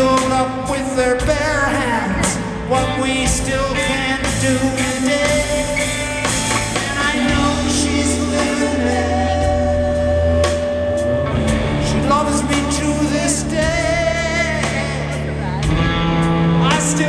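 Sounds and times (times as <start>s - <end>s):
sung vocal: 0.0s - 15.9s, 16.5s - 17.0s
bass guitar: 0.0s - 17.0s
drum kit: 0.0s - 17.0s
electric guitars: 0.0s - 17.0s.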